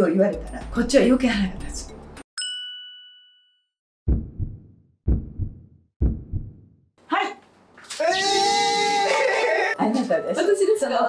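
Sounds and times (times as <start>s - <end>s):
bright ding: 2.4s - 3.7s.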